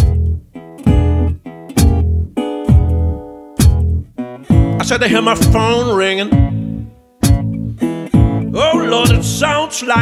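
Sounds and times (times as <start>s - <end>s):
blues guitar chords: 0.0s - 10.0s.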